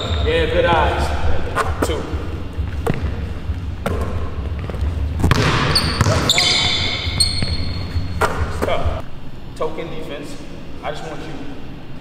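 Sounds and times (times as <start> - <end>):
high squeaks: 0.0 - 0.4, 5.3 - 8.8
basketball bouncing on hardwood: 3.8 - 6.6.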